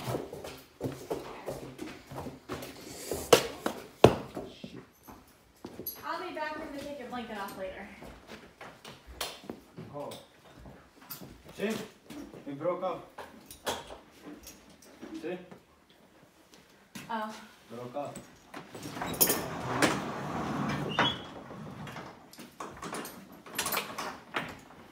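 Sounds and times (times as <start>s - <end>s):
footsteps on rubber mats: 0.0s - 12.5s.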